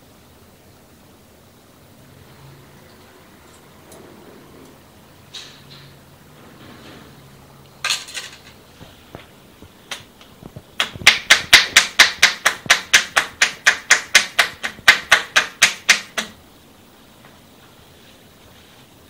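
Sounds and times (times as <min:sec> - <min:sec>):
hollow hand claps on head: 0:10.8 - 0:16.4.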